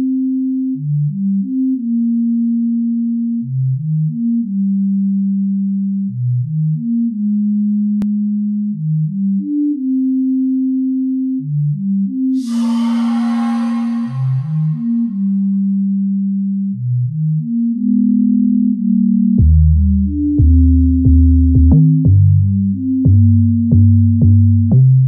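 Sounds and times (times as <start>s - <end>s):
sine wave synth melody: 12.4s - 19.2s.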